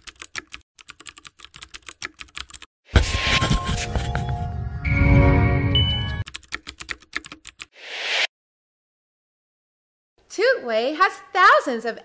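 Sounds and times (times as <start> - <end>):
music: 4.2 - 6.2
rising whoosh: 7.8 - 8.3.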